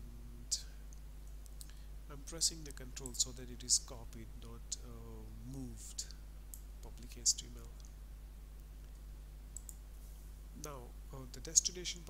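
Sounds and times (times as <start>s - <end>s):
faint electrical hum: 0.0s - 12.0s
computer mouse clicks: 9.6s - 9.8s.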